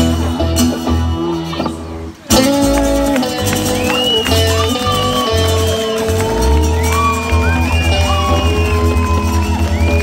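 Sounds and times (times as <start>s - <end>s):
pop-rock band playing: 0.0s - 10.0s
sliding high guitar notes: 0.0s - 10.0s
electric bass pulse: 4.5s - 10.0s.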